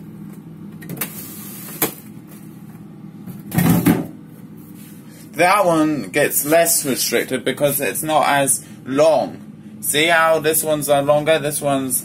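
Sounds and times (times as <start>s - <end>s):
freezer low hum: 0.0s - 12.0s.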